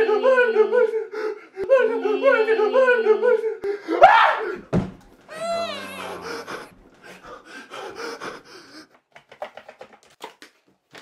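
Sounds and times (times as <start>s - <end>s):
man screaming: 5.3s - 6.7s
man's long falling cry: 5.3s - 6.7s.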